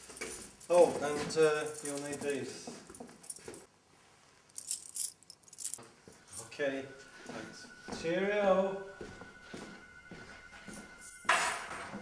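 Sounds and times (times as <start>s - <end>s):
metal keys jangling: 0.0s - 3.7s, 4.5s - 5.8s.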